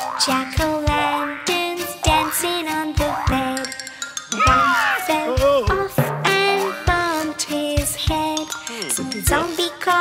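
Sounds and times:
bouncy children's music: 0.0 - 10.0
cartoon boing effects: 4.4 - 5.2.

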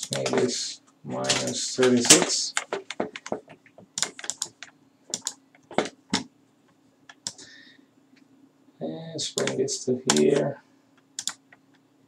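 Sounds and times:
keyboard keys clicking: 1.3 - 6.2, 9.4 - 10.5, 11.2 - 11.6.

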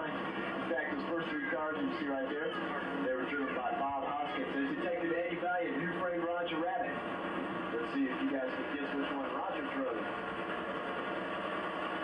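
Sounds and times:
tram engine drone: 0.0 - 12.0.

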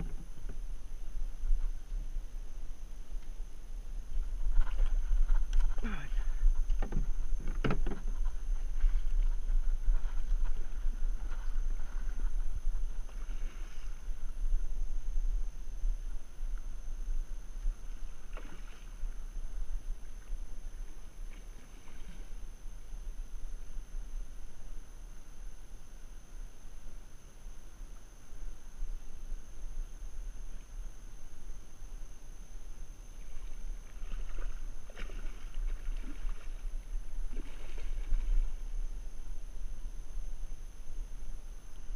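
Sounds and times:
wind rumble on microphone: 0.0 - 41.9.

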